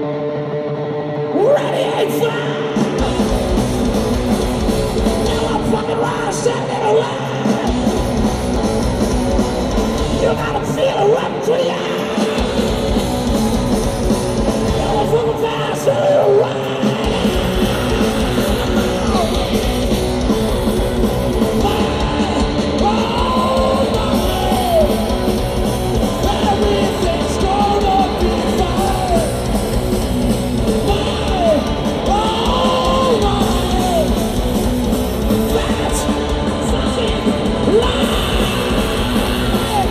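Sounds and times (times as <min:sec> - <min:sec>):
distorted electric guitars: 0:00.0 - 0:39.9
yelled vocals: 0:01.3 - 0:39.9
bass and drums: 0:01.9 - 0:39.9.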